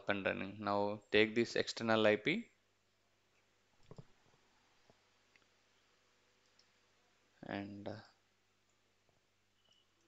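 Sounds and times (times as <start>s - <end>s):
computer mouse clicks: 3.8s - 4.1s, 6.4s - 6.8s.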